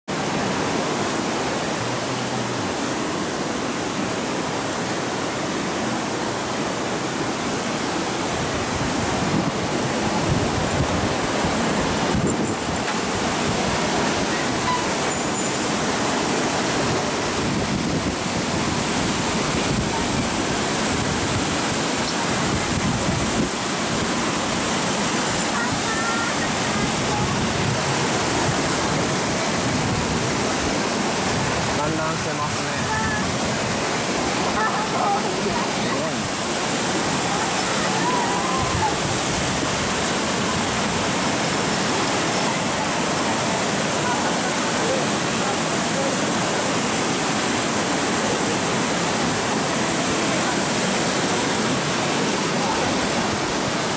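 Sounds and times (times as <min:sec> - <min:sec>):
river floodwater roaring: 0:00.1 - 0:53.9.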